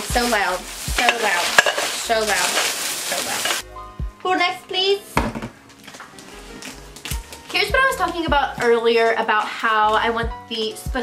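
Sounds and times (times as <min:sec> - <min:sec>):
faint background music: 0:00.0 - 0:11.0
knock on tabletop: 0:05.2 - 0:05.6.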